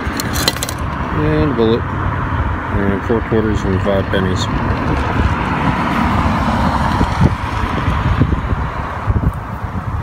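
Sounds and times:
road traffic hiss: 0.0 - 10.0
wind buffeting microphone: 4.0 - 10.0.

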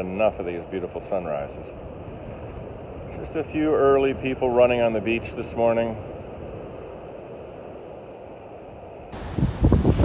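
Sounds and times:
wind buffeting microphone: 0.0 - 10.0
surf breaking on beach: 9.0 - 10.0.

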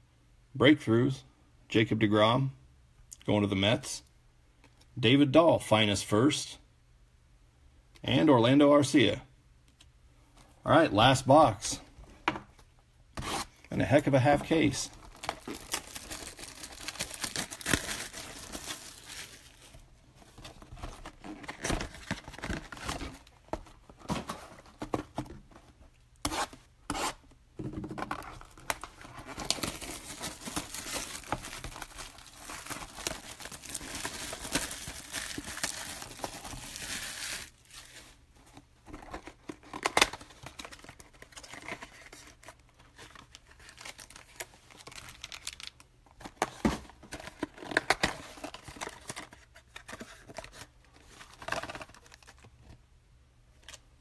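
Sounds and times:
plastic wrapping tearing and crinkling: 14.9 - 19.7, 28.3 - 38.2, 43.4 - 45.8.

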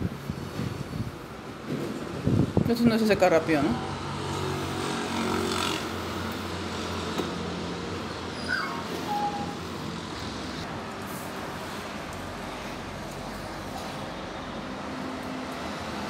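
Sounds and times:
background traffic: 0.0 - 16.0
vehicle engine humming: 3.8 - 11.1.

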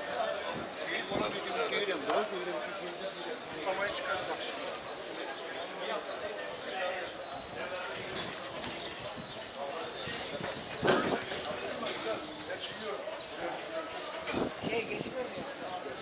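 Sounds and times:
many people talking: 0.0 - 16.0.

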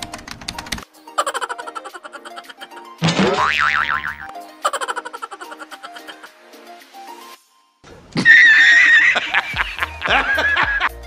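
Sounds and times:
light background music: 0.0 - 11.0
cartoon boing spring twang: 3.0 - 4.3.

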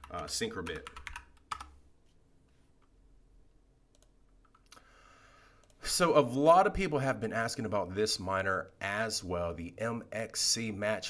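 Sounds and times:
keyboard typing: 0.0 - 1.8, 3.9 - 4.8.

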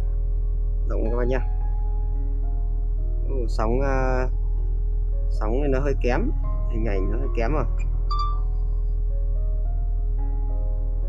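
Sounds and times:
calm background music: 0.0 - 11.0.

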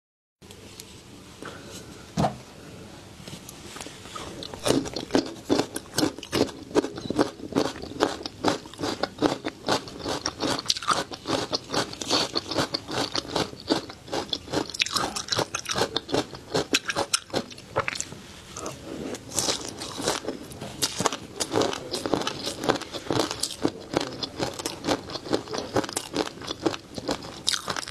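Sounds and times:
crunchy chewing: 4.2 - 27.9.

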